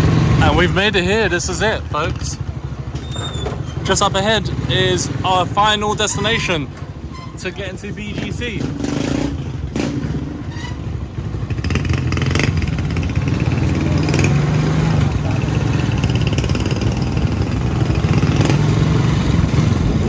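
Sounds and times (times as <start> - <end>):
motorcycle engine running: 0.0 - 6.0, 6.6 - 20.0.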